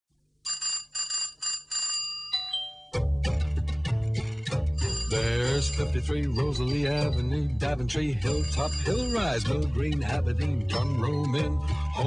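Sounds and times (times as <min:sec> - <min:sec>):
high bright bell ringing: 0:02.2 - 0:03.1.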